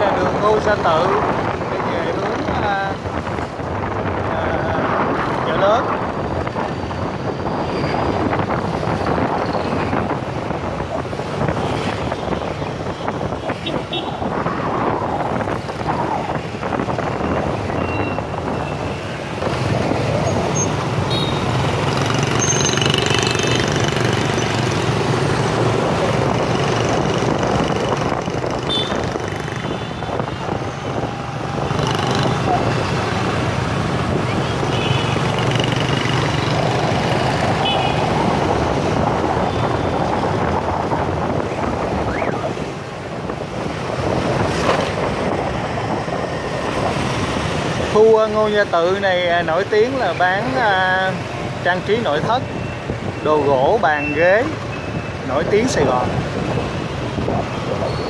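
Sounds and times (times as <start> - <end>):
road noise: 0.0 - 58.0
scooter engines in traffic: 0.0 - 58.0.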